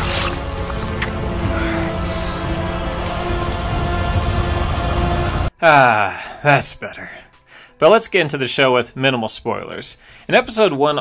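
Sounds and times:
sustained music tones: 0:00.0 - 0:10.1.

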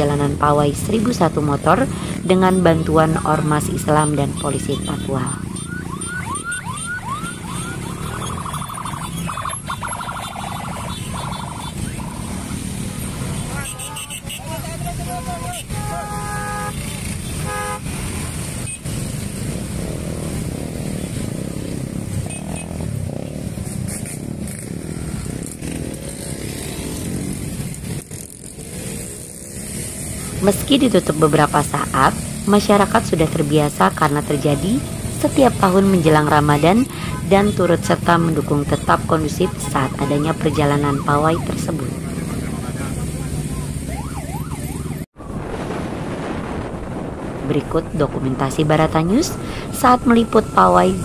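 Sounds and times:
motorcycles and scooters passing: 0:00.0 - 0:51.0
road noise: 0:00.0 - 0:51.0
siren sweeping up and down: 0:02.4 - 0:12.8, 0:30.4 - 0:51.0.

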